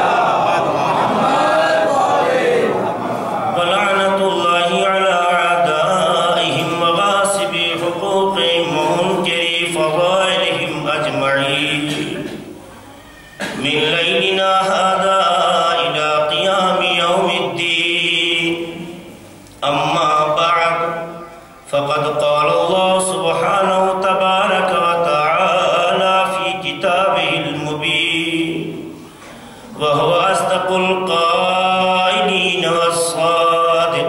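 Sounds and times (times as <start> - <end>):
man chanting into a microphone: 3.4 - 12.5, 13.6 - 29.0, 29.6 - 34.0.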